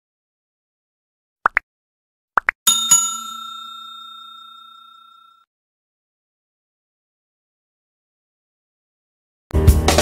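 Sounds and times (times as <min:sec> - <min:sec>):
bell ringing: 0:02.7 - 0:05.5.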